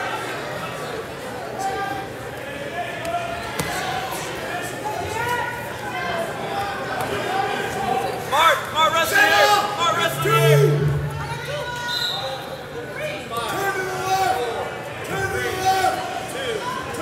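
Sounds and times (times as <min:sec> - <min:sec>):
people talking in echoing gym: 0:00.0 - 0:17.0.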